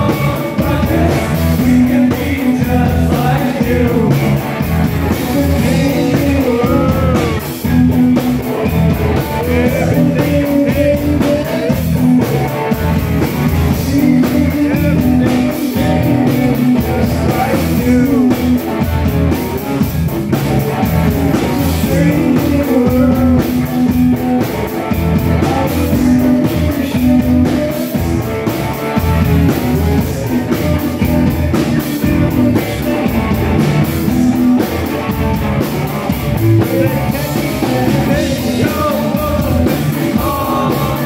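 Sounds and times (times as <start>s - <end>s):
person singing: 0.0s - 12.8s, 13.6s - 19.1s, 21.3s - 28.2s, 36.0s - 41.0s
live rock band playing: 0.0s - 41.0s.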